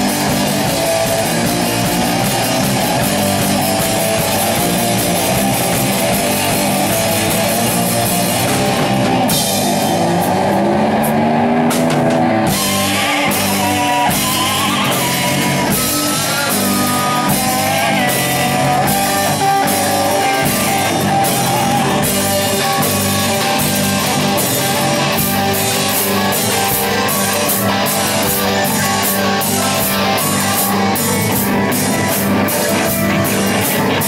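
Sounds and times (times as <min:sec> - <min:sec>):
distorted electric guitars: 0:00.0 - 0:34.0
drum and cymbal hits: 0:00.0 - 0:34.0.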